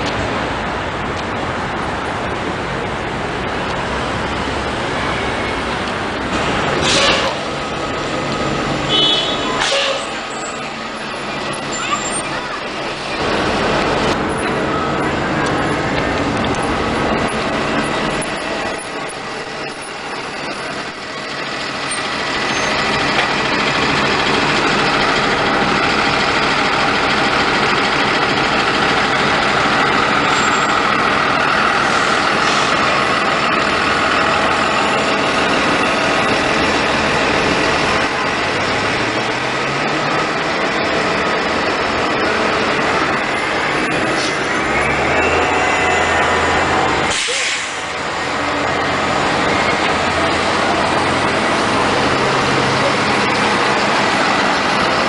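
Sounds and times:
bus drive whine: 0:00.0 - 0:55.0
bus engine rising in pitch: 0:00.0 - 0:55.0.

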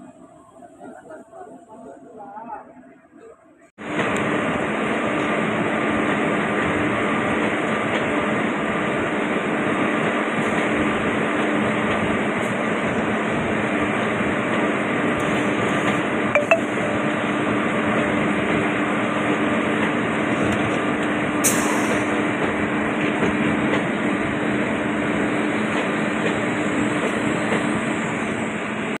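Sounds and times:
train wheels rumbling on rails: 0:03.8 - 0:16.3, 0:17.2 - 0:29.0.

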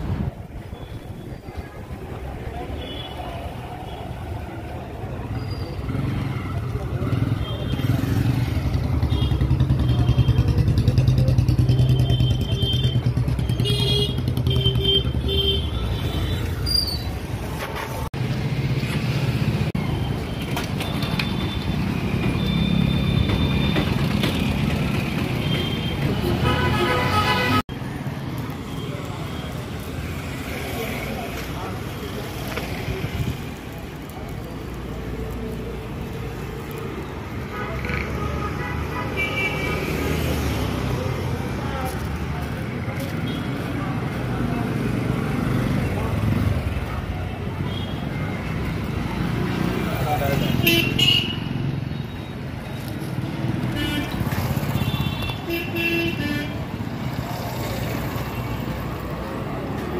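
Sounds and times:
motorcycle engines running: 0:05.8 - 0:14.8
people talking: 0:06.5 - 0:08.3, 0:28.7 - 0:36.2
horn honks: 0:25.5 - 0:27.6.

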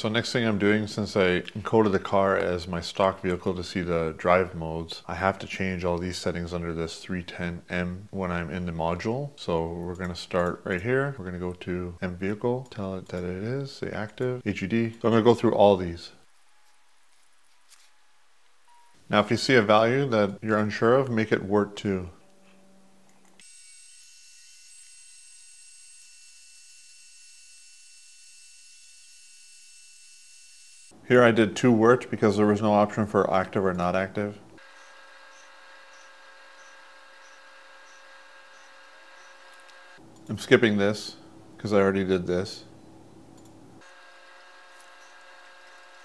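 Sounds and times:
low steady hum: 0:00.0 - 0:23.4, 0:30.9 - 0:46.0
even steady tones: 0:17.9 - 0:46.0
high-pitched whine tones: 0:34.6 - 0:40.3.

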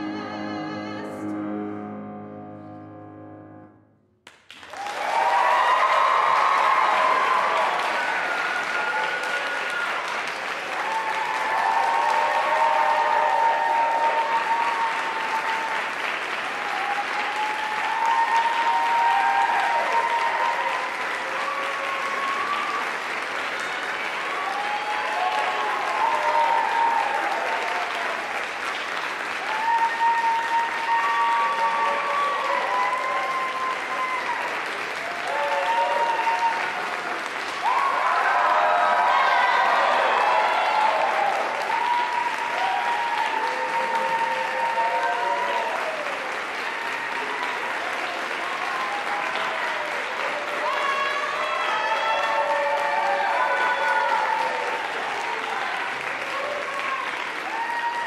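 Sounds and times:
audience applauding: 0:04.3 - 0:58.0
voices calling out and cheering: 0:29.5 - 0:46.2, 0:48.3 - 0:58.0.

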